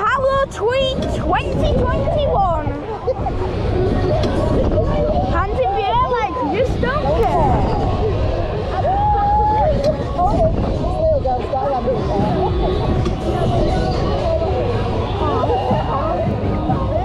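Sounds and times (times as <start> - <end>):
wind buffeting microphone: 0.0 - 17.0
riders shouting and whooping: 5.0 - 10.8.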